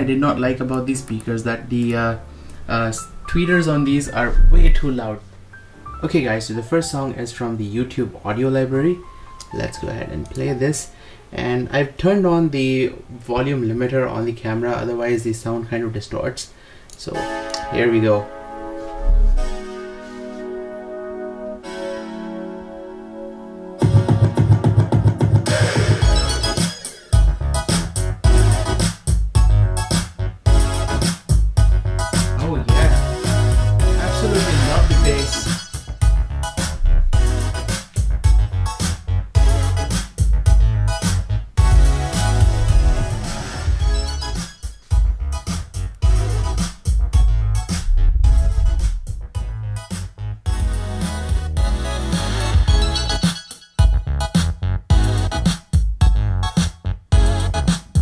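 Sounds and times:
keyboard chords: 0:00.0 - 0:07.4, 0:17.1 - 0:24.4, 0:25.5 - 0:58.0
sustained keyboard notes: 0:00.0 - 0:07.8, 0:32.5 - 0:38.8
heavy bass and drum beat: 0:27.2 - 0:53.1, 0:53.8 - 0:58.0.

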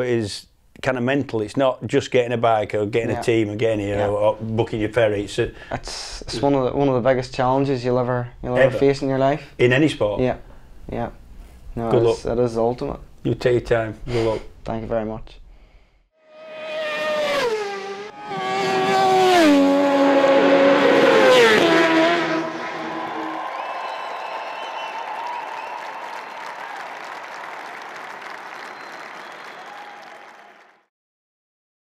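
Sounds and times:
racing motorcycles passing: 0:16.3 - 0:23.4.

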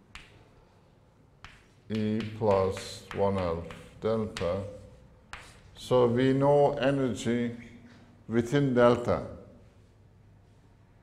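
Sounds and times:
chalk tapping on blackboard: 0:00.0 - 0:00.5, 0:01.4 - 0:05.9
faint chalk scratching: 0:01.4 - 0:06.0.

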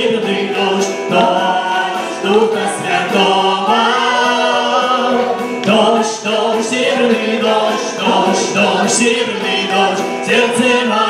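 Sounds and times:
group singing praise song: 0:00.0 - 0:11.0.

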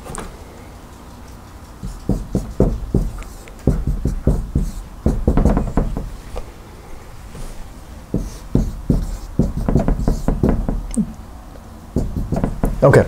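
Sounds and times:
marker writing on a whiteboard: 0:01.0 - 0:06.5, 0:07.3 - 0:11.0, 0:11.9 - 0:13.0.

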